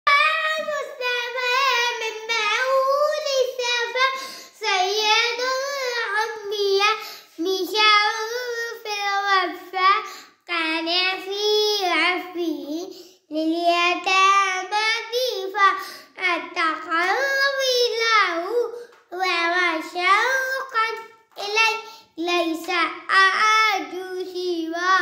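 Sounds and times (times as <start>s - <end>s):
girl singing unaccompanied: 0.0s - 25.0s.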